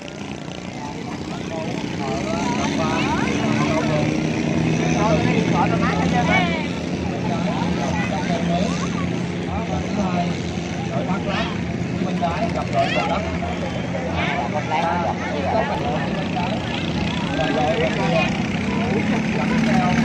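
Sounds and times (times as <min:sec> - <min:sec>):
outboard motor droning: 0:00.0 - 0:20.0
people talking and calling: 0:00.0 - 0:20.0.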